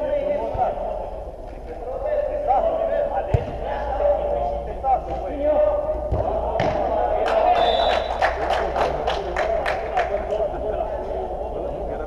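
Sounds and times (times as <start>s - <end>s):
sharp claps: 7.2s - 10.4s.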